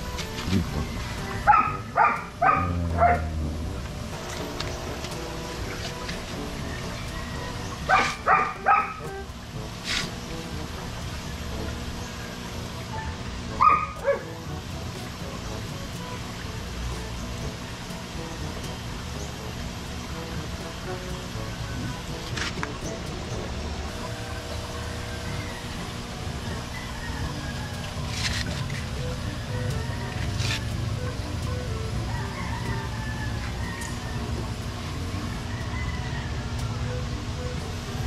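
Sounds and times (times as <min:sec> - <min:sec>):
dog barking: 0:01.4 - 0:03.3, 0:07.9 - 0:09.0, 0:13.6 - 0:14.3
dog yelp: 0:01.5 - 0:03.3, 0:07.9 - 0:09.0, 0:13.6 - 0:14.3.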